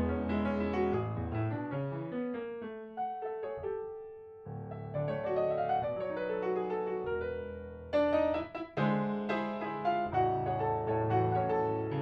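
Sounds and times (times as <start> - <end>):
grand piano playing a tango: 0.0 - 12.0.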